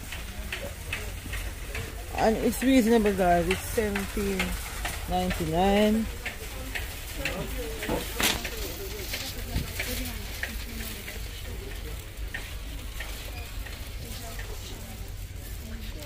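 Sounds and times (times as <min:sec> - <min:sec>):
faint distant voices: 0:00.0 - 0:16.0
shopping cart rattling: 0:00.0 - 0:16.0.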